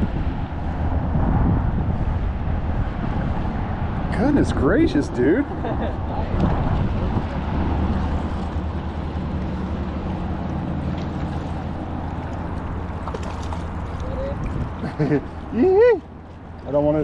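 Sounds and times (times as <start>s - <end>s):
rushing wind and water: 0.0s - 17.0s.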